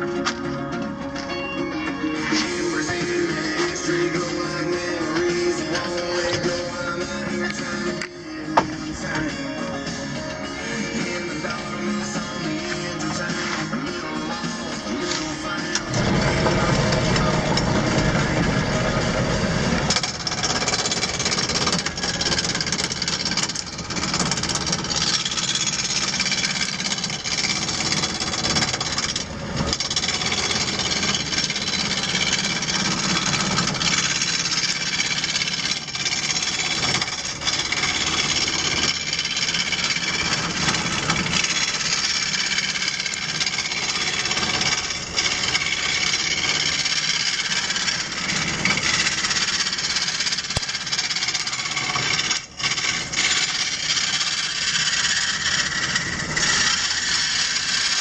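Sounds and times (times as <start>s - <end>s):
wood lathe running: 1.8s - 58.0s
turning tool scraping wood: 2.2s - 7.7s, 10.6s - 58.0s.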